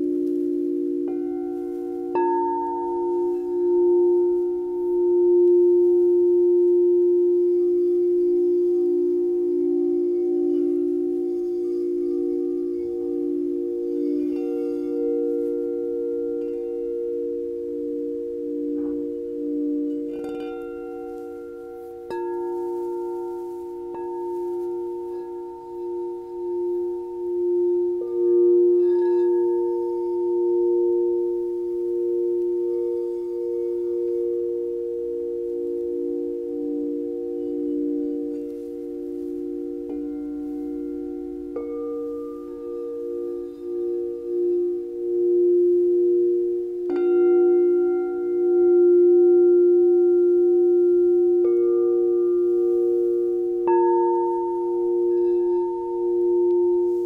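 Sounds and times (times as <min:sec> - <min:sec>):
crystal singing bowls ringing: 0:00.0 - 0:57.0.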